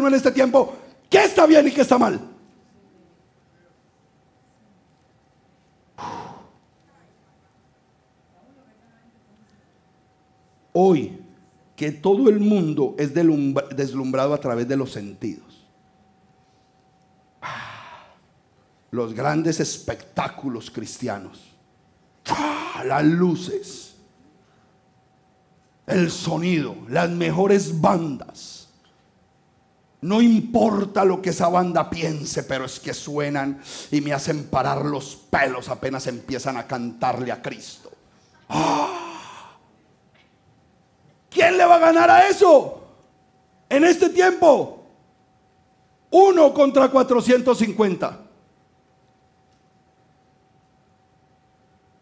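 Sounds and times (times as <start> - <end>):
man sighing loudly: 17.4 - 18.2, 38.5 - 39.6
man's loud breath: 38.5 - 39.6.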